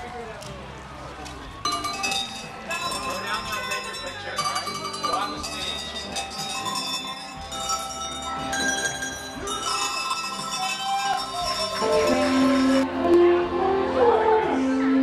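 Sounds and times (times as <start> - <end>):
cowbells clanging: 1.6 - 12.9.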